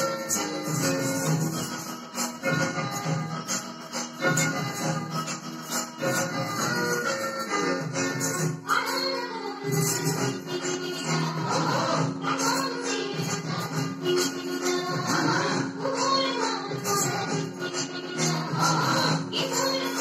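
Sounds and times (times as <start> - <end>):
folk dance music: 0.0 - 20.0.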